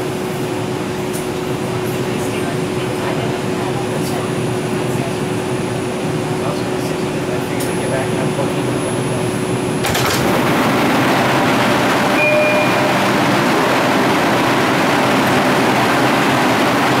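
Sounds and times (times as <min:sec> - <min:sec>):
subway train and station rush: 0:00.0 - 0:17.0
short tone: 0:12.1 - 0:13.2.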